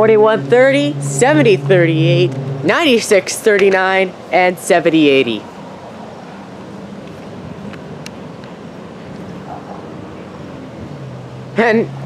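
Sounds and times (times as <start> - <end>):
distant diesel locomotive drone: 0.0 - 12.0.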